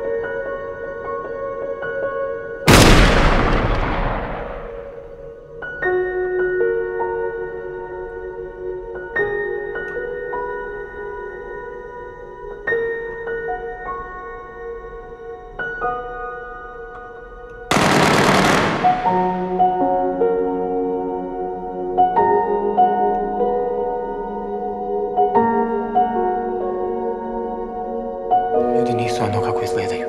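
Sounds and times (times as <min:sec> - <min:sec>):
automatic gunfire burst: 0:02.7 - 0:04.9, 0:17.7 - 0:19.6
heavy rifle shot echoing: 0:02.7 - 0:05.1, 0:17.7 - 0:19.8.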